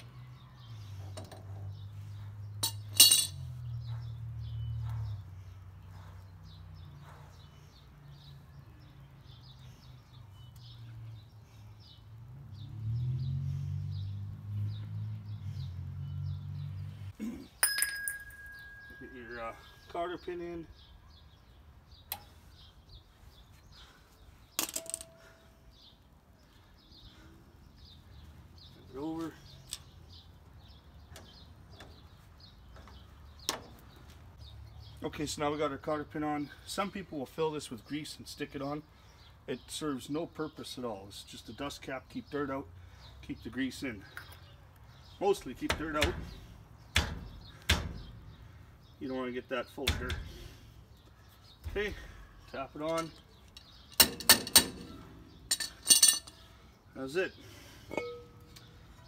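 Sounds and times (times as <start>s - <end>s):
birds chirping: 0.0s - 59.0s
metallic clatter of tools: 2.6s - 3.5s, 24.6s - 25.2s, 52.9s - 56.5s.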